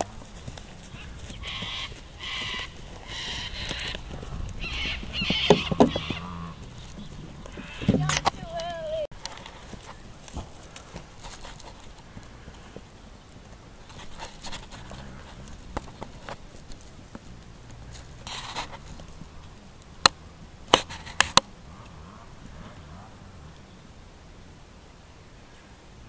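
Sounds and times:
horse hoofbeats on grass: 0.0 - 23.2.

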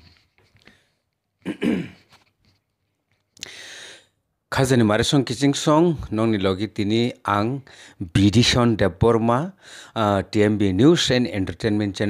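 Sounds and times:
man clearing his throat: 1.4 - 2.2.

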